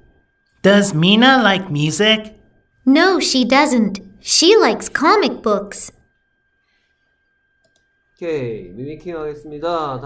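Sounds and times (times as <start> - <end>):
computer mouse clicks: 7.6 - 7.9.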